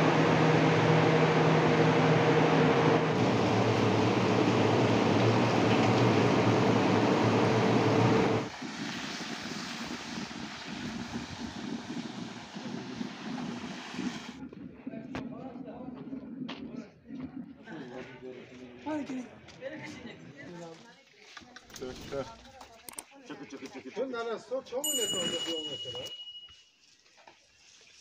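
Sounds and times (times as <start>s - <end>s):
loud roar with low hum: 0.0s - 8.5s
broth bubbling at the boil: 3.1s - 17.8s.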